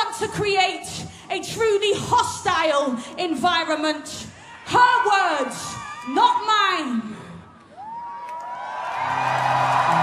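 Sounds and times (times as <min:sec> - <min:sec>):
crowd cheering: 0:07.6 - 0:10.0.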